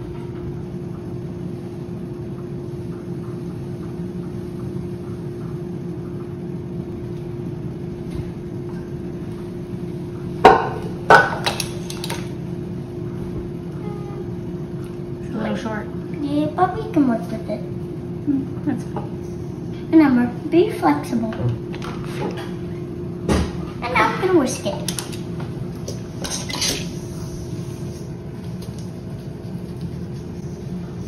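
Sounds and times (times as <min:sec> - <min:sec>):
steady background hum: 0:00.0 - 0:31.0.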